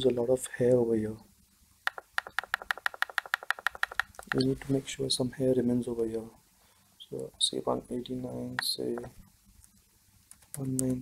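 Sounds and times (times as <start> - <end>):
mouse scroll wheel clicking: 1.9 - 4.7.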